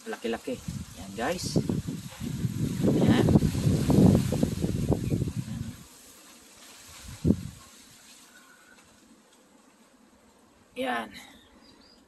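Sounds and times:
wind buffeting microphone: 0.4s - 5.9s, 7.0s - 7.7s.

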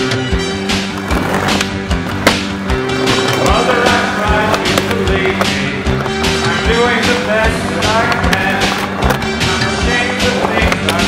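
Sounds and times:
music with steady beat: 0.0s - 11.0s
skateboard wheels rolling: 0.4s - 11.0s
skateboard clacking on pavement: 0.9s - 11.0s.

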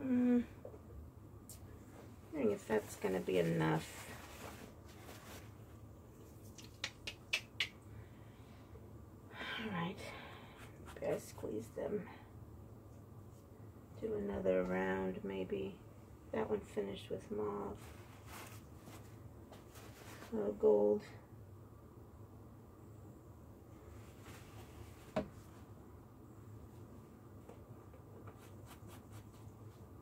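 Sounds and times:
faint room noise: 0.0s - 30.0s
paper towel rustling: 2.6s - 6.5s, 17.7s - 20.4s, 23.8s - 25.6s.

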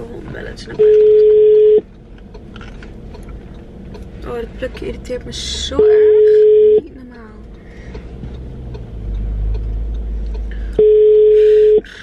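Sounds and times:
car cabin rumble: 0.0s - 11.9s
telephone ringback beep: 0.8s - 1.8s, 6.0s - 6.8s, 10.8s - 11.8s.

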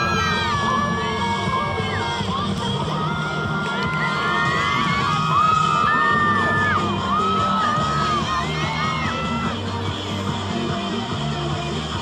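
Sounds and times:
crowd cheering and whooping: 0.0s - 2.1s, 2.8s - 9.7s
music: 0.0s - 12.0s.

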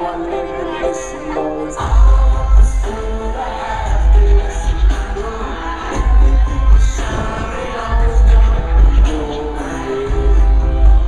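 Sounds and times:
live pop concert music: 0.0s - 11.0s
person singing: 0.0s - 11.0s
heavy pulsing bass: 1.8s - 11.0s.

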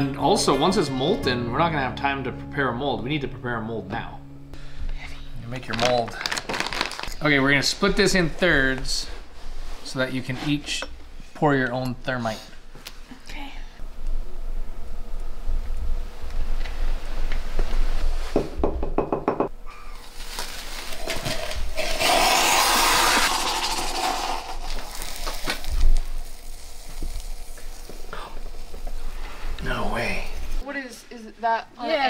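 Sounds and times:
sparkler fizzing and hissing: 20.0s - 29.0s.

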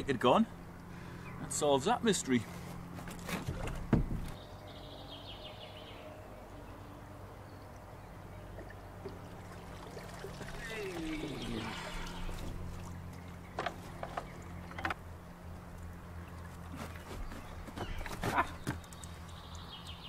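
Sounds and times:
water trickling: 8.4s - 13.6s
person groaning with effort: 10.6s - 12.4s.

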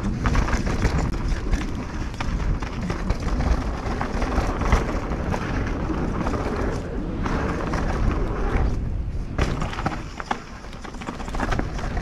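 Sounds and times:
bike rattling and clicking: 0.0s - 12.0s
tyres rolling over dirt: 0.0s - 12.0s
wind rumble on microphone: 0.0s - 12.0s.

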